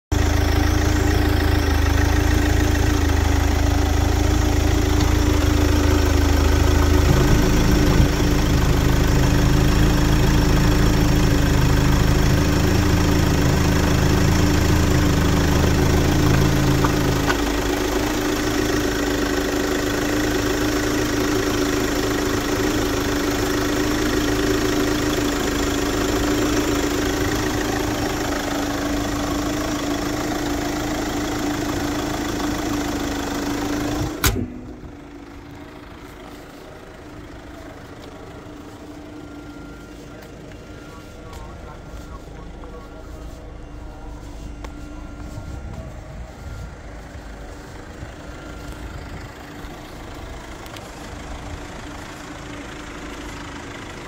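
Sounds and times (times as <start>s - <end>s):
diesel engine idling: 0.0s - 54.0s.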